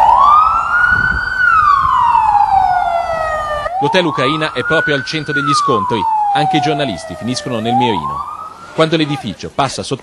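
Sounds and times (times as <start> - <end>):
ambulance siren wailing: 0.0 - 9.5.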